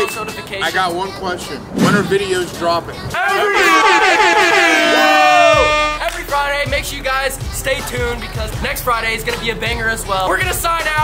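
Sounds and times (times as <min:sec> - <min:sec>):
young men shouting a long note: 0:03.2 - 0:06.0.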